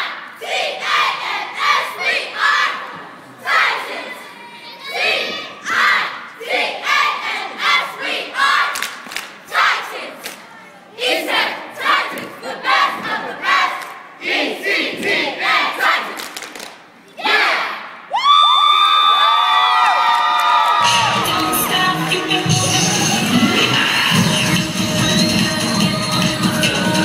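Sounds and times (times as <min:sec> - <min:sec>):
cheerleaders shouting a cheer: 0:00.0 - 0:08.8, 0:09.4 - 0:16.2, 0:17.1 - 0:24.4
crowd cheering and screaming: 0:18.1 - 0:24.4.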